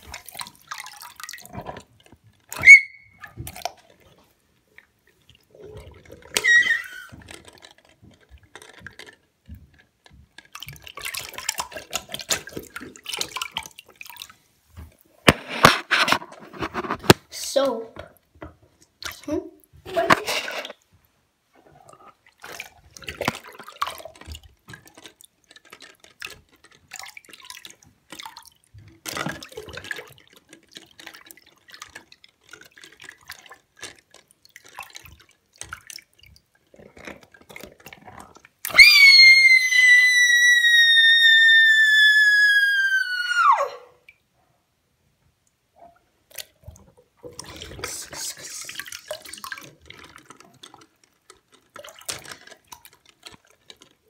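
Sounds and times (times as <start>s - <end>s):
water splashing and dripping: 0.0s - 44.3s, 45.4s - 54.0s.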